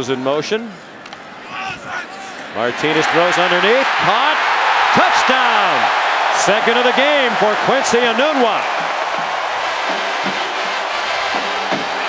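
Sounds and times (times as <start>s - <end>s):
stadium crowd cheering: 1.4s - 12.0s.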